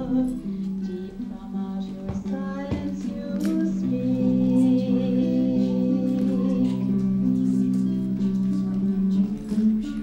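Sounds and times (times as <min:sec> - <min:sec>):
woman singing slow melody: 0:00.0 - 0:10.0.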